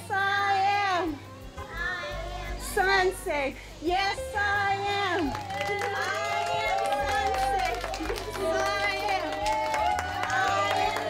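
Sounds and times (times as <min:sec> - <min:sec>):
children and adults singing: 0:00.0 - 0:05.0, 0:07.3 - 0:11.0.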